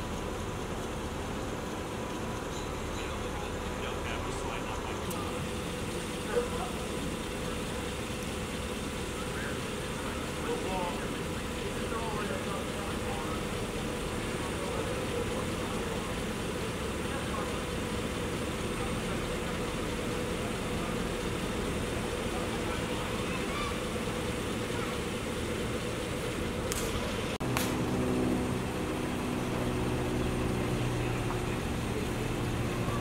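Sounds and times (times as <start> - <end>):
distant voices: 0.0 - 33.0
vehicles idling hum: 0.0 - 33.0.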